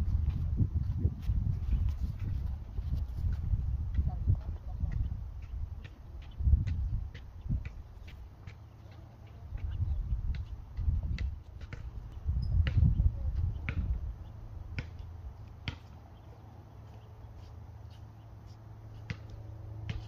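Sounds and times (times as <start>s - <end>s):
wind buffeting microphone: 0.0s - 8.3s, 9.4s - 15.3s.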